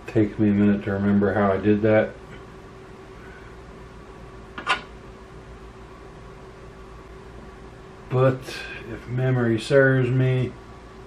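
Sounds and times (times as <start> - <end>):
sharp click: 4.6 - 4.9.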